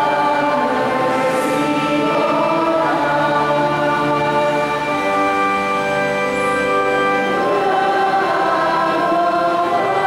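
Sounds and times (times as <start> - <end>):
choir singing a hymn: 0.0 - 10.0.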